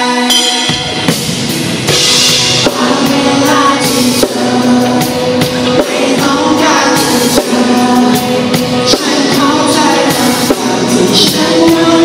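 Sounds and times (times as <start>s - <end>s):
man singing lead vocal: 0.0s - 0.8s, 2.6s - 12.0s
live pop-rock band: 0.0s - 12.0s.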